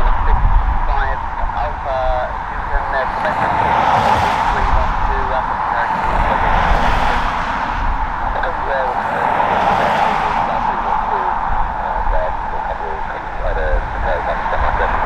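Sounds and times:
jet engines rushing: 0.0 - 15.0
wind buffeting microphone: 0.0 - 15.0.

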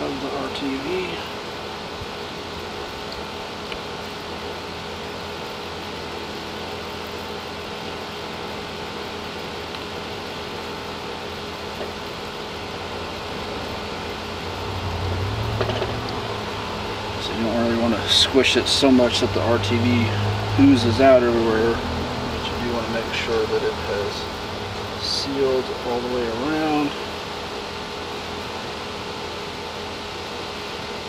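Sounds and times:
fan-like background hum: 0.0 - 31.0.

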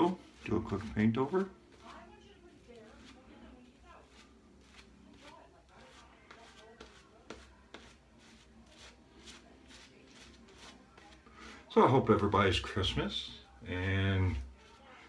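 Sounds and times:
shaving brush scratchy strokes: 0.0 - 11.2.

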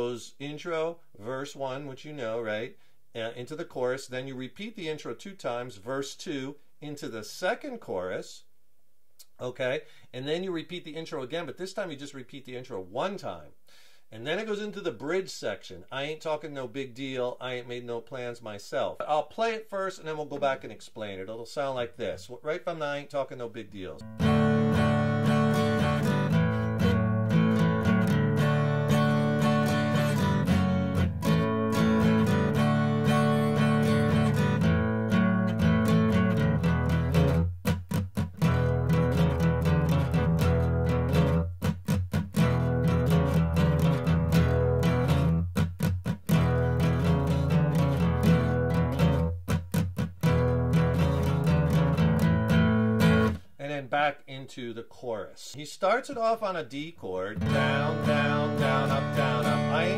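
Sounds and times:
acoustic guitar strumming: 24.0 - 53.5, 57.4 - 59.9.

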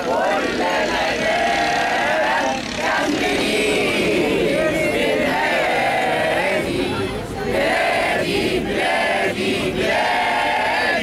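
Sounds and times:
crowd chanting in unison: 0.0 - 11.0.

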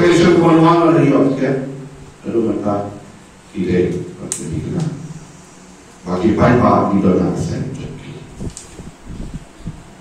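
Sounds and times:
man speaking into a microphone: 0.0 - 5.2, 6.0 - 8.3.

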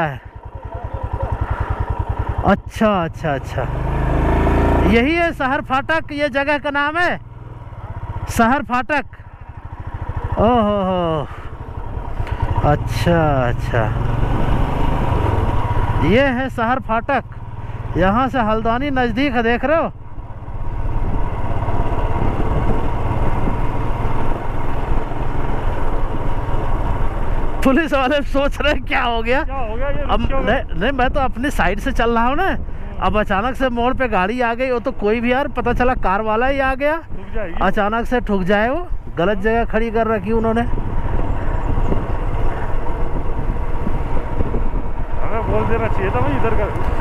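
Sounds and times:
motorcycle engine idling: 0.0 - 47.0.

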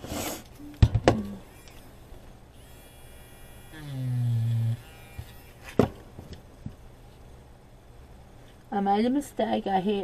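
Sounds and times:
electric eraser whirring on paper: 2.6 - 5.8.

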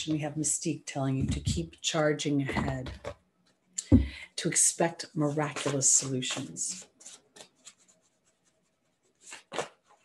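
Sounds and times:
cards rustling and tapping: 9.2 - 10.0.

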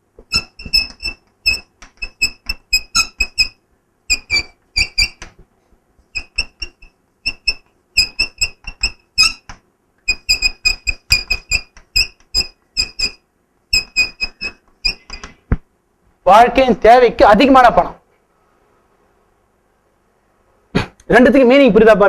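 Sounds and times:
chalk squeaking on blackboard: 0.2 - 5.4, 6.0 - 15.5.

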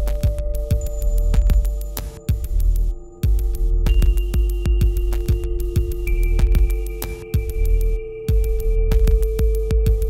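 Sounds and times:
deep bass pulse: 0.0 - 10.0
steady held electronic tones: 0.0 - 10.0.

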